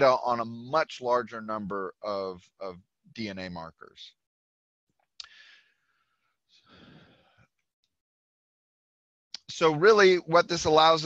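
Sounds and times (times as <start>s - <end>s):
faint breath in: 5.2s - 7.5s.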